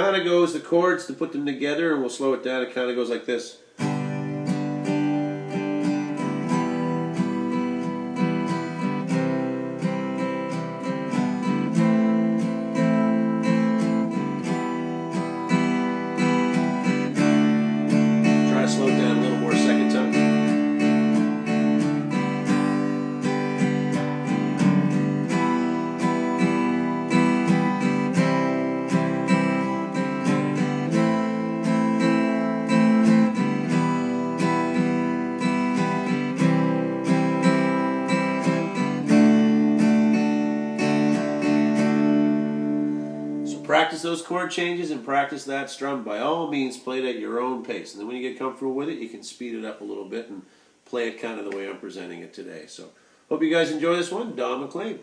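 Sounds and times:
acoustic guitar strummed slowly: 0:03.8 - 0:44.0.

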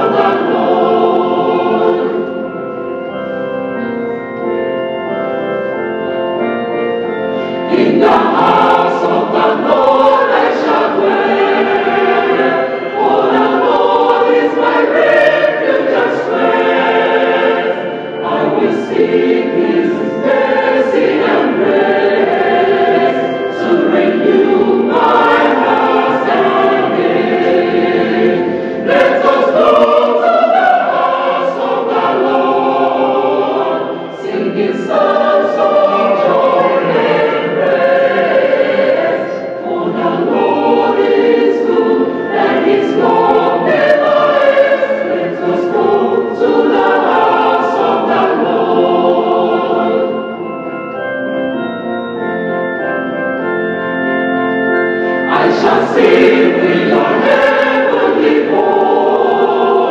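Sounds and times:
mixed choir singing a hymn: 0:00.0 - 0:02.6, 0:07.4 - 0:50.6, 0:55.0 - 0:59.9.

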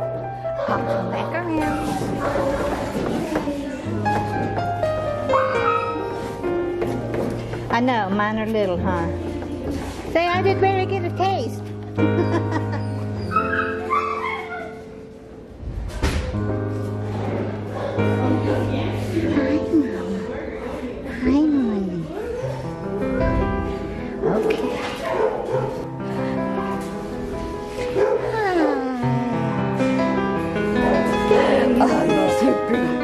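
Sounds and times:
background music: 0:00.0 - 0:33.0
dog whining: 0:12.2 - 0:14.9.

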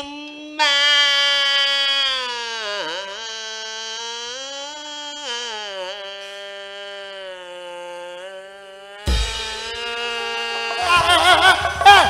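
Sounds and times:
man wailing in mock crying: 0:09.6 - 0:12.0.

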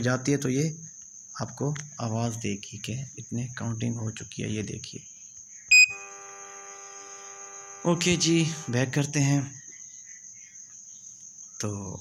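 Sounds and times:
electrical hum: 0:05.7 - 0:09.4
faint high whine: 0:05.7 - 0:09.6
man's voice: 0:07.9 - 0:09.5.

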